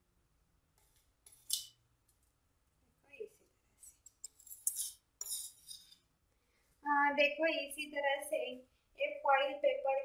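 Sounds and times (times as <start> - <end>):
metal utensil scraping ceramic bowl: 3.8 - 6.0.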